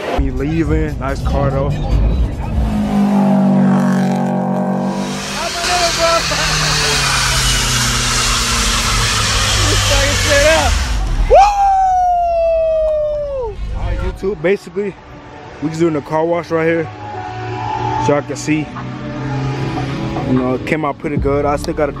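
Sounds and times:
tires screeching: 0:00.0 - 0:22.0
car engine revving under load: 0:00.6 - 0:11.4, 0:16.9 - 0:21.8
loud gliding tone: 0:01.1 - 0:11.5.

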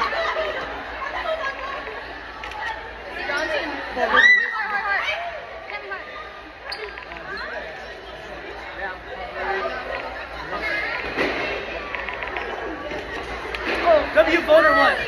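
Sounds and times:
young people talking and calling out: 0:00.0 - 0:15.0.

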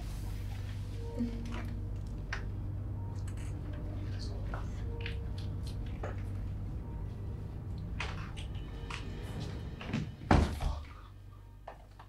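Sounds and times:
door slamming shut: 0:10.0 - 0:10.8.

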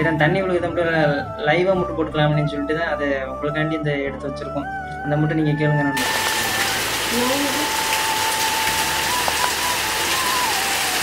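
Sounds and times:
waterfall splashing into pool: 0:06.0 - 0:11.0.

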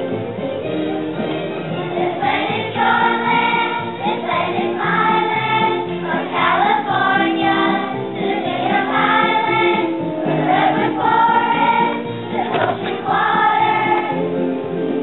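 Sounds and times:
instrumental accompaniment: 0:00.0 - 0:15.0
children's choir singing: 0:01.7 - 0:14.4.

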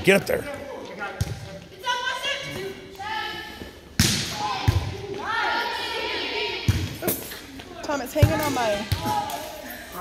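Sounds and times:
voices in echoing hall: 0:00.0 - 0:10.0.

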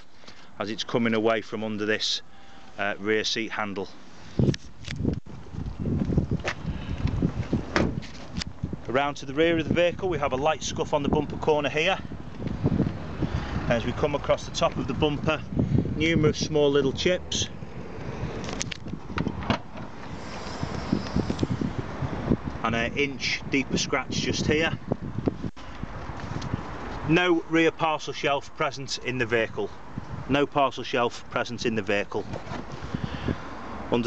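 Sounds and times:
wind rumbling on microphone: 0:03.9 - 0:27.5, 0:29.3 - 0:30.5, 0:31.2 - 0:34.0
handling thump: 0:07.7 - 0:08.3.

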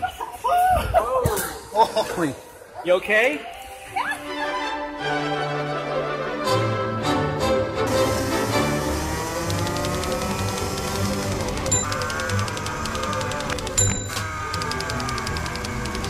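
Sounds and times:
kart engines revving: 0:07.9 - 0:16.0.

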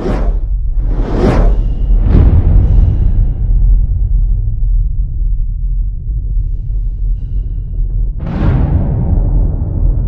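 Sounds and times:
whooshes: 0:00.0 - 0:03.6
deep bass rumble: 0:00.0 - 0:10.0.

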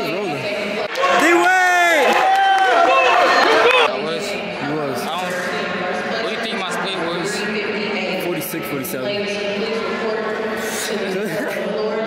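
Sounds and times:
crowd murmur in a large hall: 0:00.0 - 0:12.0
people exclaiming loudly: 0:00.9 - 0:03.9
people talking: 0:03.3 - 0:12.0.

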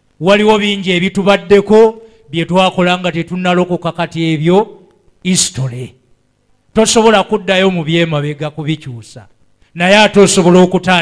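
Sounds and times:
man preaching: 0:00.2 - 0:06.1, 0:06.7 - 0:11.0.

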